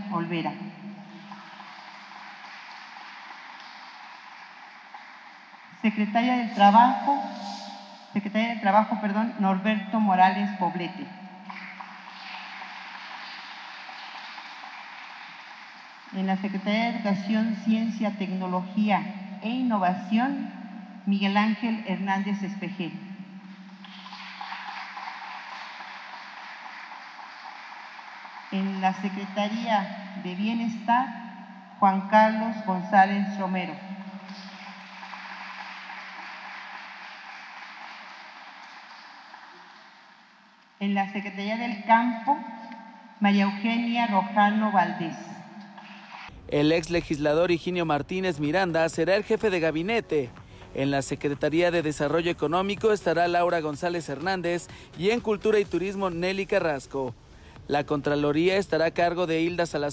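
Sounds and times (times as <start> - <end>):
audience applauding: 1.0 - 5.8, 11.4 - 16.2, 23.5 - 29.6, 34.1 - 40.8.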